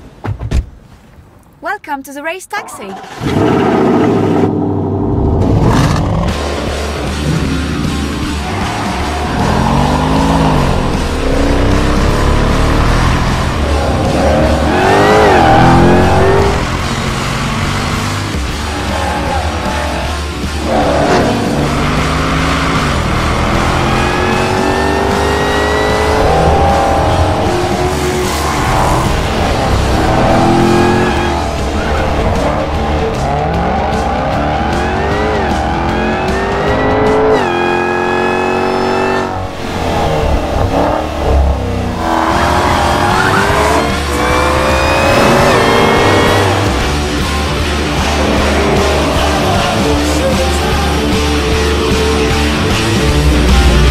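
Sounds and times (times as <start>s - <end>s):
car engine accelerating hard: 3.0s - 53.9s
music: 5.4s - 53.9s.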